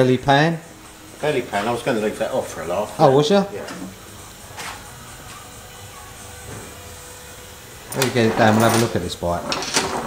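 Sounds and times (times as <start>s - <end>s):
low hiss of workshop noise: 0.0s - 10.0s.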